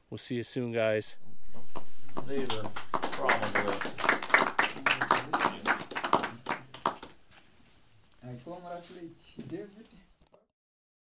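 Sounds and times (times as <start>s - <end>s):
voices talking: 0.1s - 7.3s
group clapping: 1.4s - 7.3s.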